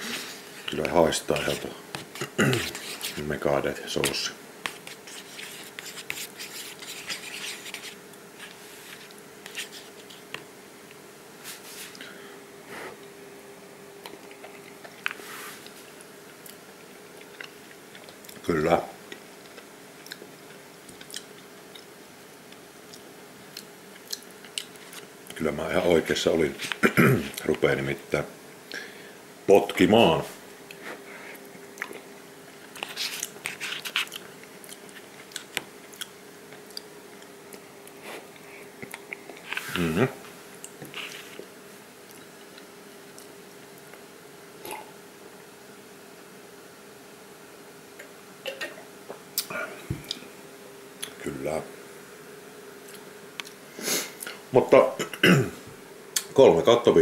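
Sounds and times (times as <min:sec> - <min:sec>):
wet chewing: 0:14.0 - 0:15.8, 0:32.7 - 0:39.6.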